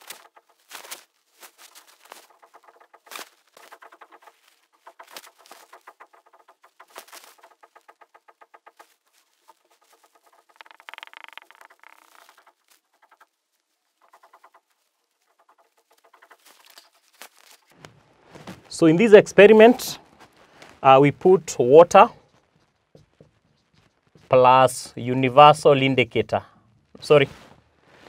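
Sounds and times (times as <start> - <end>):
marker pen squeaking on whiteboard: 0.0 - 17.7, 21.4 - 25.2
marker pen writing on whiteboard: 9.4 - 13.2.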